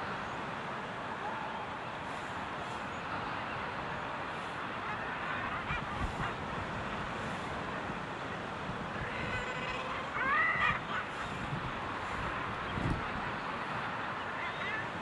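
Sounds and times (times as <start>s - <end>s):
seabird colony calling: 2.1s - 15.0s.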